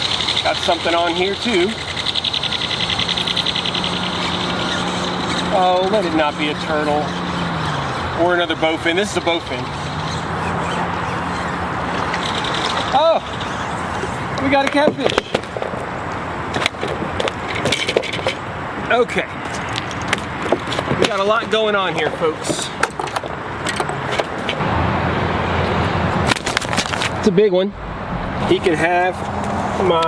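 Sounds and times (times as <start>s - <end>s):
steady low hum: 27.7s - 30.0s.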